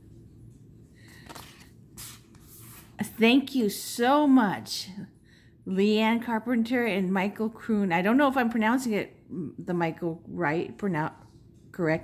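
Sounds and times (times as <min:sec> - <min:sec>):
cards sliding and rubbing: 0:01.0 - 0:03.0.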